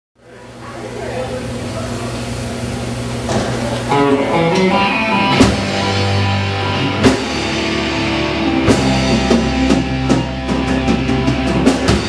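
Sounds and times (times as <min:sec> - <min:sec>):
room chatter: 0:00.2 - 0:12.0
live band playing: 0:03.3 - 0:12.0.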